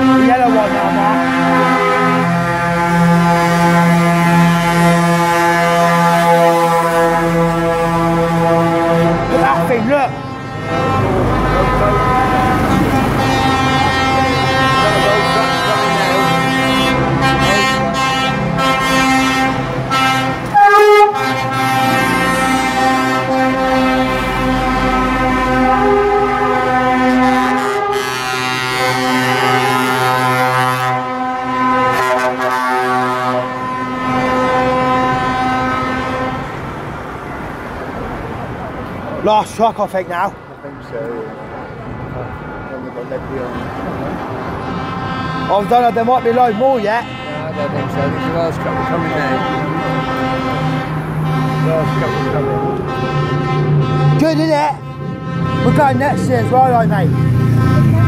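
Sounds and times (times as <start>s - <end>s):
lorries driving past: 0.0s - 58.0s
lorry horns sounding: 0.0s - 58.0s.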